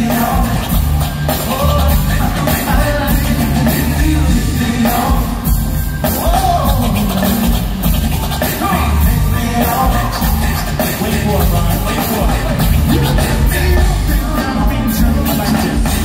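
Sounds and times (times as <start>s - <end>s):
amplified band with bass and drums: 0.0s - 16.0s
vocal group singing: 0.0s - 16.0s.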